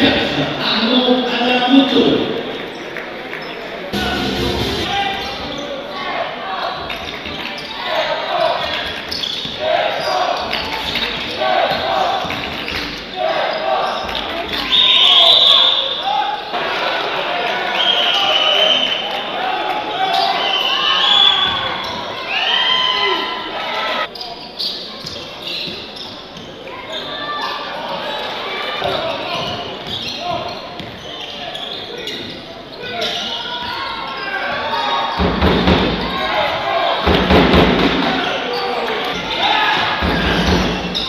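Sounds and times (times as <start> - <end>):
voices echoing in hall: 0.0 - 41.0
sneaker squeaks: 6.6 - 16.2, 20.0 - 22.9, 24.0 - 36.6, 38.1 - 41.0.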